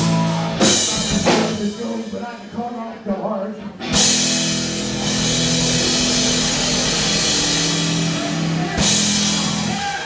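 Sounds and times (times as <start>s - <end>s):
live rock band playing loud: 0.0s - 10.0s.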